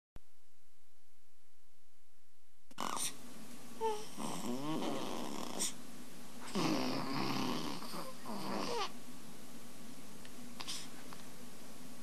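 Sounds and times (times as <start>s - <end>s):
rasping snore-like sound: 3.9s - 5.8s, 6.5s - 8.9s.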